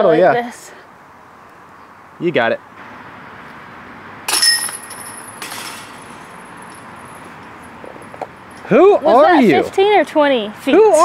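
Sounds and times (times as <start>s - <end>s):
disc striking basket chains: 4.3s - 8.7s.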